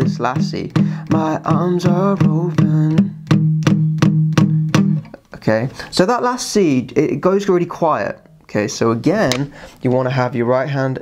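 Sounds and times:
acoustic guitar strumming chord: 0:00.1 - 0:05.1.

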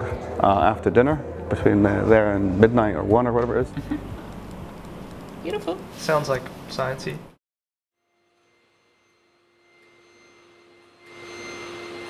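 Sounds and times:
vacuum cleaner running: 0:10.9 - 0:12.0.

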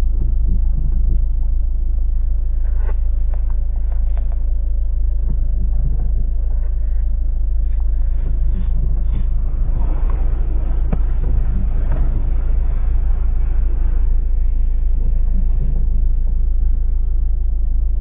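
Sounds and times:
steady low rumble: 0:00.0 - 0:18.0.

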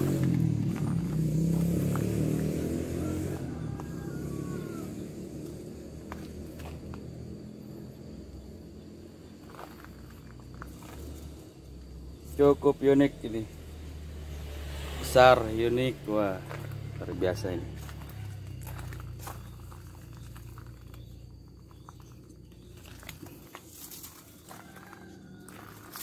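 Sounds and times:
motorcycle engine running: 0:00.0 - 0:26.0.

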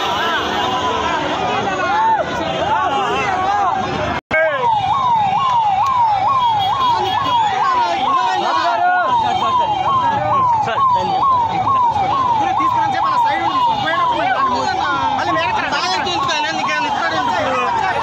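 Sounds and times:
crowd noise: 0:00.0 - 0:18.0
electronic siren yelping: 0:04.4 - 0:18.0.

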